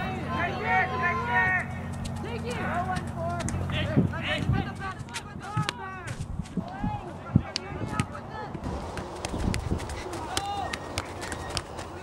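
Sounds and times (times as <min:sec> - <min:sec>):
voices calling: 0:00.0 - 0:12.0
footfalls running on grass: 0:08.6 - 0:12.0.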